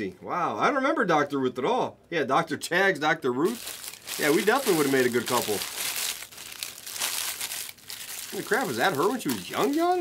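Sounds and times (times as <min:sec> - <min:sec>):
plastic wrappers crinkling: 0:03.4 - 0:10.0.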